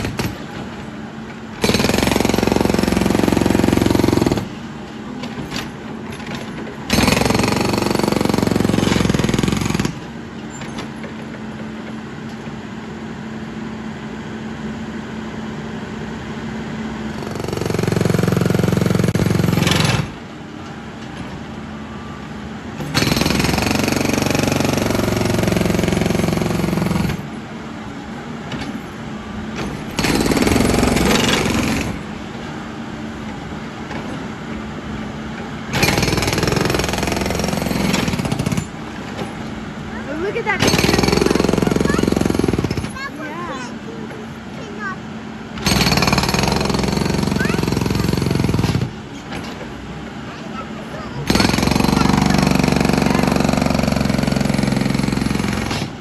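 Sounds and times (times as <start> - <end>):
hydraulic hammer pounding pavement: 0.0 - 12.6, 17.0 - 21.6, 22.7 - 56.0
backhoe engine running: 0.0 - 56.0.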